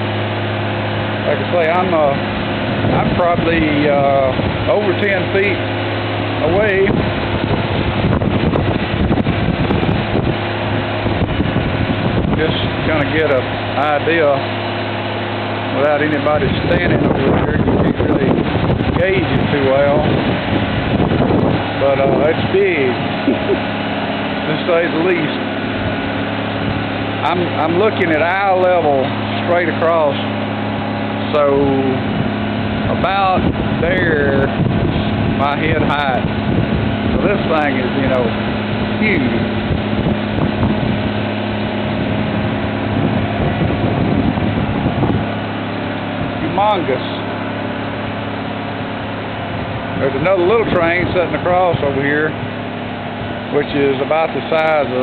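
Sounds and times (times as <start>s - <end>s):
engine hum: 0.0s - 55.0s
wind buffeting microphone: 0.0s - 55.0s
man speaking: 1.2s - 2.2s, 2.9s - 5.6s, 6.4s - 7.0s, 12.4s - 14.5s, 15.7s - 18.4s, 19.0s - 20.1s, 21.8s - 23.6s, 24.4s - 25.4s, 27.2s - 30.3s, 31.2s - 32.0s, 32.9s - 34.6s, 35.4s - 36.3s, 37.2s - 38.4s, 39.0s - 39.5s, 46.4s - 47.3s, 50.0s - 52.4s, 53.5s - 55.0s.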